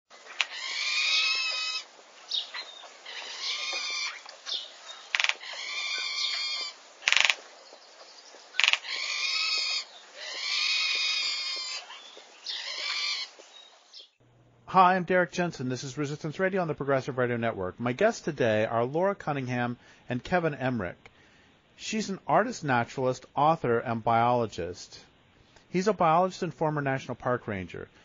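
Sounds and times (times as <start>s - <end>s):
bird calling: 0.1s - 14.2s
sharp clicks: 7.0s - 7.4s.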